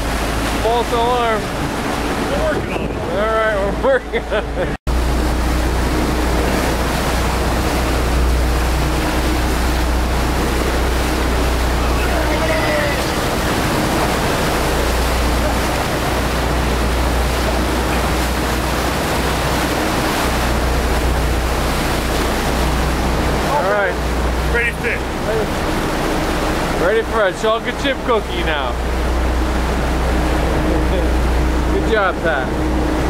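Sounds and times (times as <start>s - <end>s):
water rushing along boat hull: 0.0s - 33.0s
wind on microphone: 1.5s - 3.5s.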